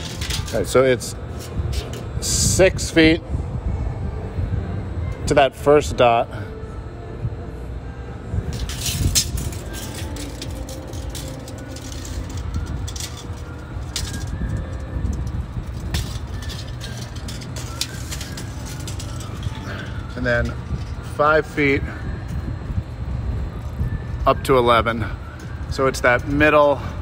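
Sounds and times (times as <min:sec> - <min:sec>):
low background rumble: 0:00.0 - 0:27.0.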